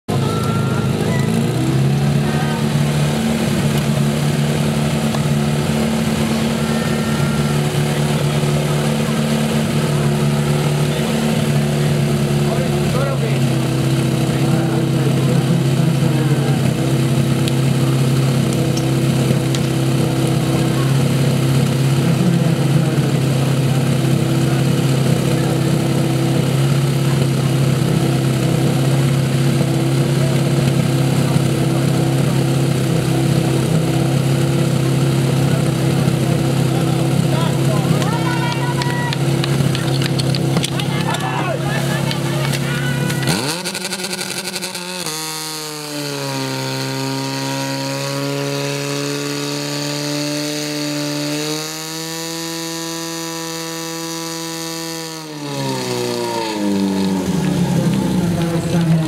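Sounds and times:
pump engine running hard: 0:00.1 - 0:59.0.

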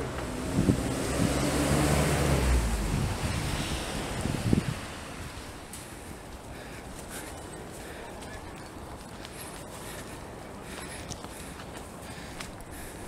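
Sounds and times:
low rumbling noise: 0:00.0 - 0:06.8.

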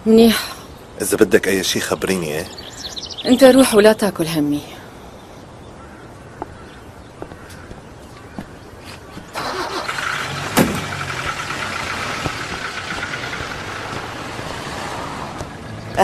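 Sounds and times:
old car engine starting and running: 0:09.3 - 0:16.0.

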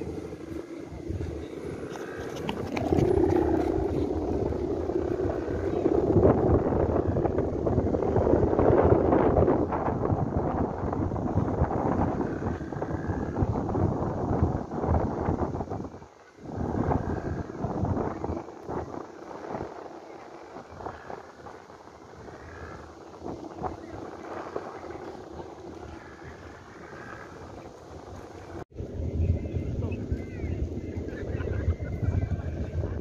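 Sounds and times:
low droning rumble: 0:00.0 - 0:19.4
wind buffeting microphone: 0:00.0 - 0:33.0.

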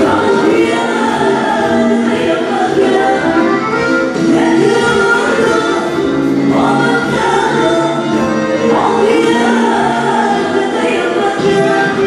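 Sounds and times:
backing music: 0:00.0 - 0:12.0
women singing into microphones: 0:00.0 - 0:12.0.

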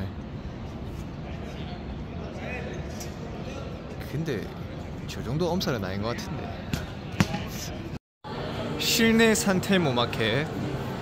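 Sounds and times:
crowd hubbub: 0:08.3 - 0:11.0.

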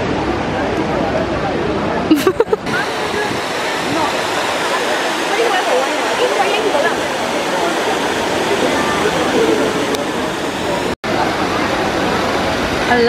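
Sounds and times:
crowd chatter: 0:00.0 - 0:13.0
fountain water cascading: 0:00.0 - 0:13.0.

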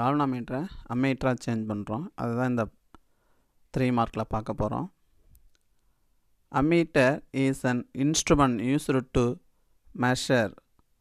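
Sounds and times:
man speaking: 0:00.0 - 0:02.8, 0:03.7 - 0:05.0, 0:06.5 - 0:10.7.

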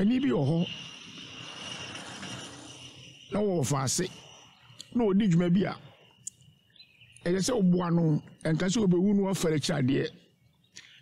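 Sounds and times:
low outdoor haze: 0:00.0 - 0:11.0
thin steady high tone: 0:00.0 - 0:11.0.

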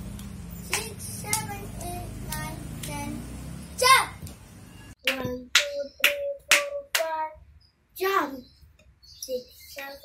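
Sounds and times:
child clapping hands: 0:00.1 - 0:03.1, 0:05.0 - 0:07.2.

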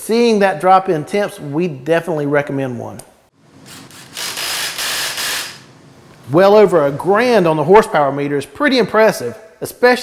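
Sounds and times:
cordless power tool whirring: 0:03.6 - 0:05.7.

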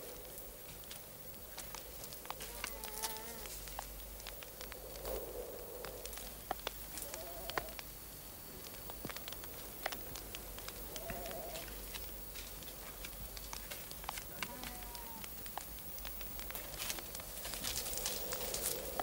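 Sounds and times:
faint hiss with clicks: 0:00.0 - 0:19.0
sheep bleating: 0:14.3 - 0:15.2.

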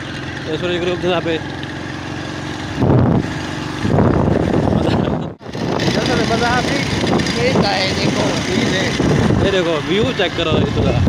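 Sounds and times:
vehicle engine running: 0:00.0 - 0:11.0
wind buffeting microphone: 0:02.7 - 0:11.0.

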